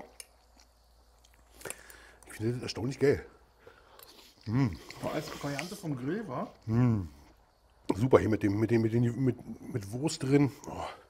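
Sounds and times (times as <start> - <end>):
man chewing food: 0.2 - 2.4, 3.5 - 5.8.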